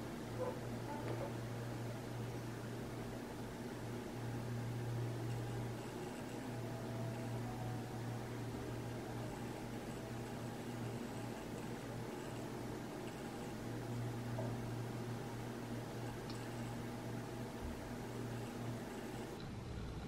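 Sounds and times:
low hum: 0:00.0 - 0:20.0.

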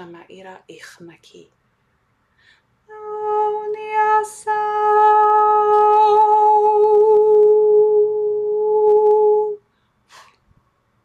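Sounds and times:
woman singing a long note: 0:02.9 - 0:09.6.

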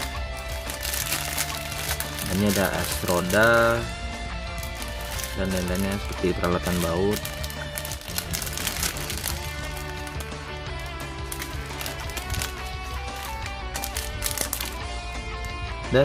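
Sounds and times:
plastic bag crinkling: 0:00.0 - 0:03.9, 0:04.5 - 0:14.9
background music with held notes: 0:00.0 - 0:16.0.

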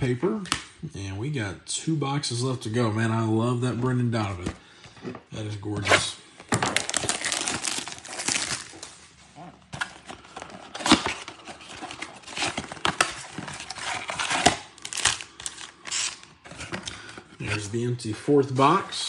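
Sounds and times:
cardboard tearing: 0:05.8 - 0:09.0, 0:09.8 - 0:16.7
packaging crinkling: 0:06.4 - 0:17.1.

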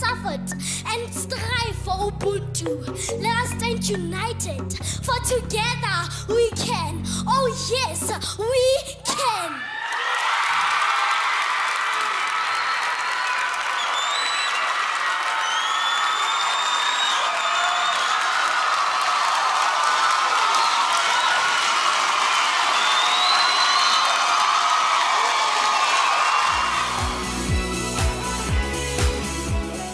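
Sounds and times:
audience cheering and applauding: 0:09.6 - 0:29.9
high whistles and shrieks: 0:22.8 - 0:24.2.

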